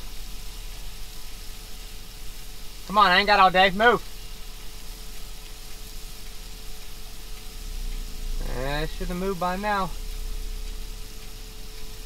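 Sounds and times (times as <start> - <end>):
faint steady tone: 0.0 - 12.0
hiss and hum in truck cab: 0.0 - 12.0.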